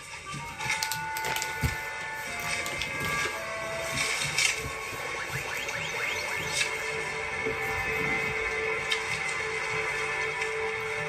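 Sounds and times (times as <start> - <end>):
background music: 0.0 - 11.0
arcade machine beeps and tones: 2.0 - 7.8
quick falling electronic chirps: 5.1 - 7.0.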